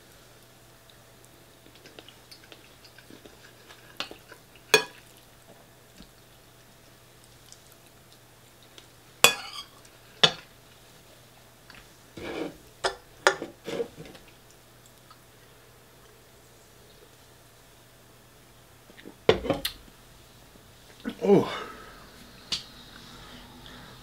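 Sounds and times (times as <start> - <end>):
cutlery clinking on ceramic bowl: 4.7 - 5.0, 9.3 - 10.4.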